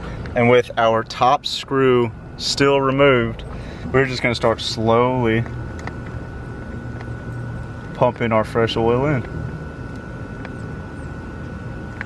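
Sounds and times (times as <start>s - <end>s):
faint high whine: 0.0s - 12.0s
low engine rumble: 0.0s - 12.0s.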